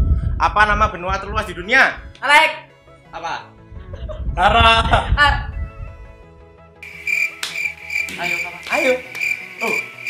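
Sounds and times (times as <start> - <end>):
faint background music: 0.4 - 10.0
high cricket chirps: 6.8 - 10.0.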